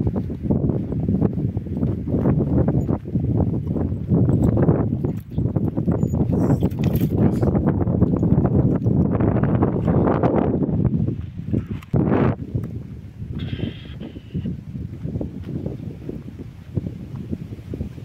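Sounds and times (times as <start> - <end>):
footsteps crunching on dirt road: 0.0 - 18.0
wind buffeting microphone: 0.0 - 18.0.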